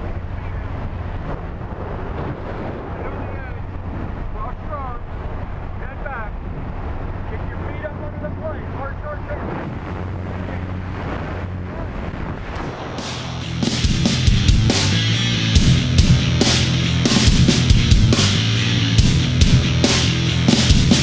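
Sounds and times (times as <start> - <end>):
loud rush of wind: 0.0 - 21.0
plane engine droning: 0.0 - 21.0.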